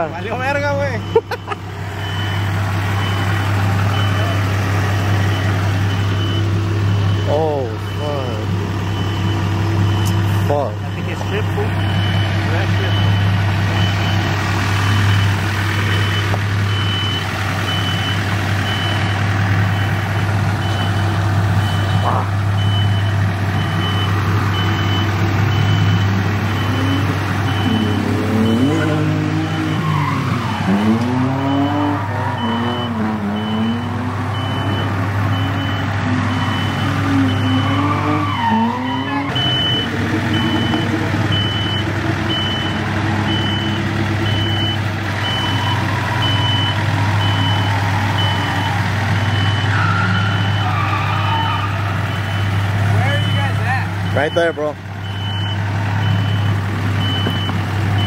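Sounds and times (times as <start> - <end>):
diesel tractor engine running: 0.0 - 58.0
reversing alarm beeping: 0.4 - 58.0.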